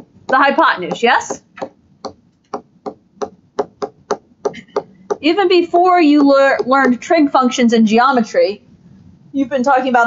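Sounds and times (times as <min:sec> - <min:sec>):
stylus tapping on tablet screen: 0:00.0 - 0:07.2.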